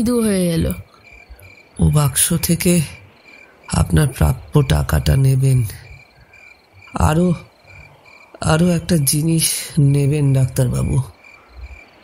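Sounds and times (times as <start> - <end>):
crickets chirping: 0.0 - 12.0
frog croak: 0.2 - 12.0.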